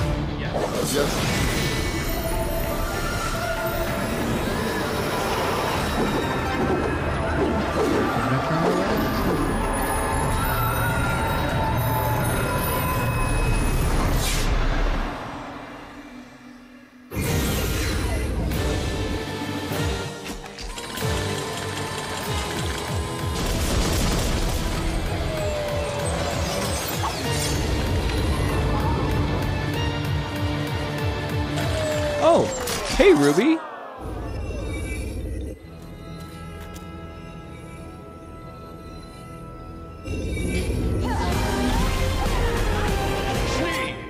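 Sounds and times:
fight scene soundtrack music: 0.0s - 33.4s, 40.0s - 44.0s.

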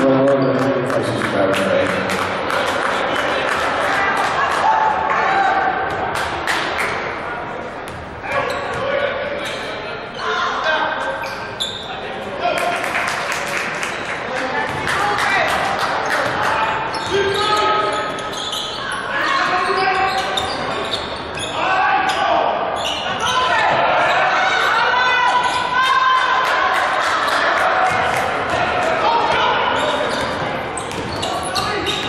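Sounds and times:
voices echoing in a hall: 0.0s - 32.0s.

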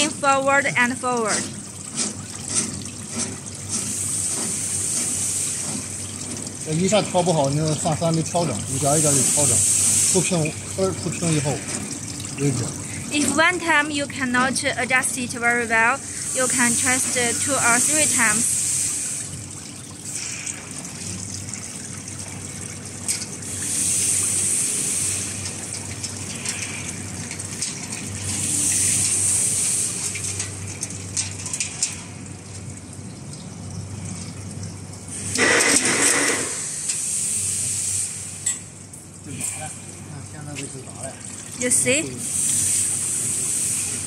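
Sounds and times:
hissing rush of wire feeding: 8.3s - 13.5s, 15.1s - 19.4s, 23.4s - 30.5s, 35.1s - 38.5s, 41.6s - 44.0s.

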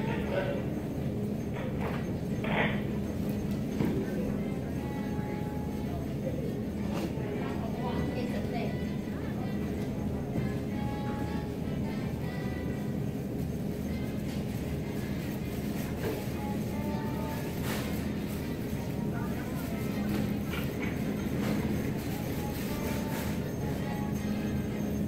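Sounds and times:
murmur of voices: 0.0s - 13.8s
checkout beeps and clicks: 0.0s - 25.0s.

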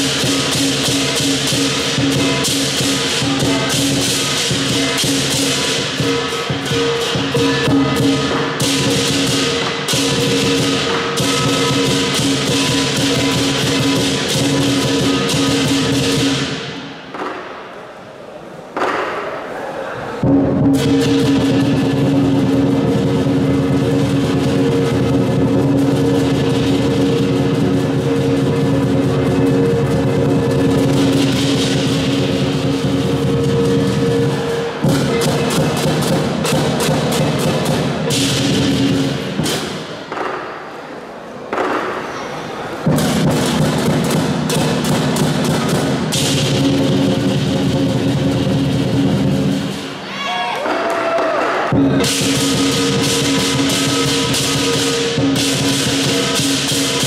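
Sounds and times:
gong: 0.0s - 16.9s, 20.2s - 39.8s, 51.7s - 57.0s
hand cymbals clashing: 0.0s - 17.5s, 20.2s - 50.0s, 51.7s - 57.0s
big drum: 0.0s - 17.8s, 20.2s - 40.7s, 41.4s - 57.0s.

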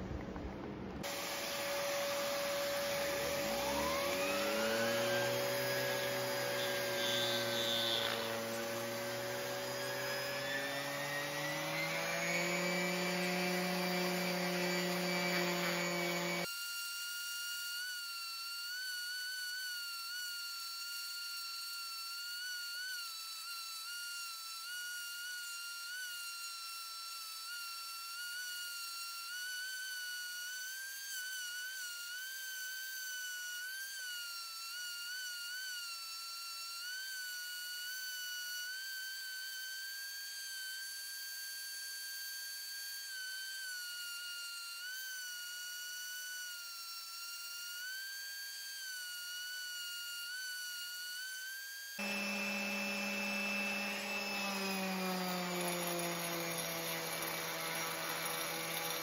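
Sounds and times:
orbital sander whining: 1.0s - 59.0s.

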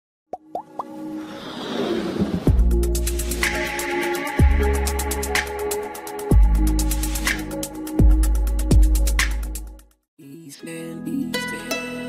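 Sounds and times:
whoosh: 1.2s - 3.6s
intro music: 2.5s - 9.8s.

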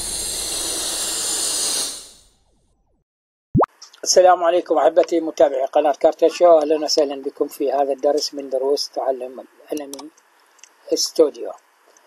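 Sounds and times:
bright rushing noise: 0.0s - 2.3s.

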